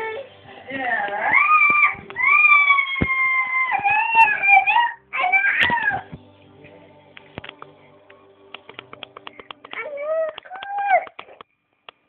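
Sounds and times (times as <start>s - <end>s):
loud high cry like a meow: 1.3s - 6.1s.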